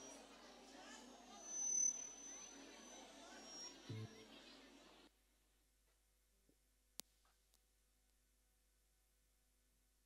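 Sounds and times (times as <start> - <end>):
thin high tone: 0.0 - 4.3
crowd chatter in a hall: 0.0 - 5.1.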